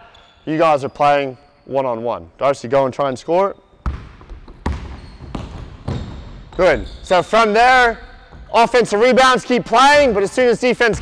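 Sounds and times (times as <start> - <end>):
basketball bouncing on wooden floor: 3.8 - 7.1, 8.1 - 8.6.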